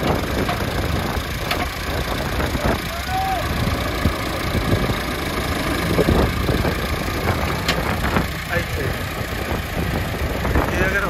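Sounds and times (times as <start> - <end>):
tractor diesel engines running: 0.0 - 11.0.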